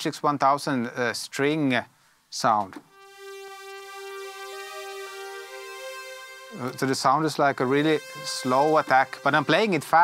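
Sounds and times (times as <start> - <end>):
synthesizer strings melody: 3.0 - 10.0.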